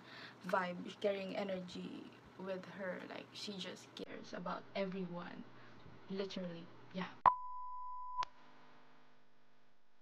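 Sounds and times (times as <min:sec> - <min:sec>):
censor beep tone: 0:07.2 - 0:08.3.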